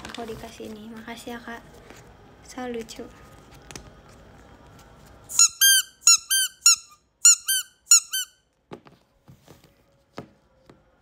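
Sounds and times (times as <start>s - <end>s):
rubber duck toys squeaking: 5.3s - 8.4s.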